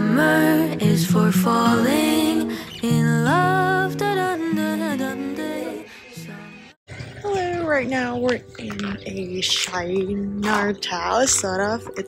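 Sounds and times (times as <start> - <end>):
pop song with soft vocal: 0.0 - 6.8.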